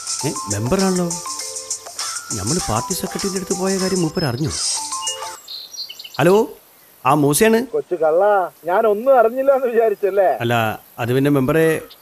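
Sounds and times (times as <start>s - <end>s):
phone music ringtone: 0.0s - 5.4s
high bird chirps: 0.0s - 7.0s.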